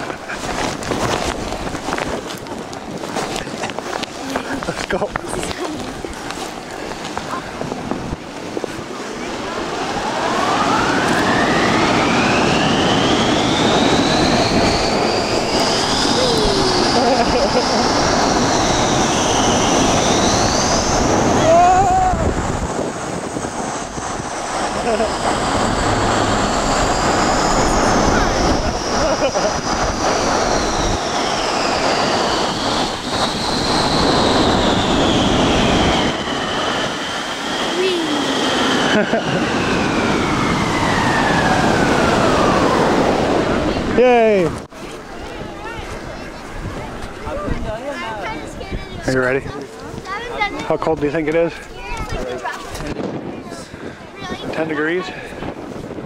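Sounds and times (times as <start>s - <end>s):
snow tube rushing over snow: 0.0s - 56.0s
long gliding whistling tones: 8.9s - 43.8s.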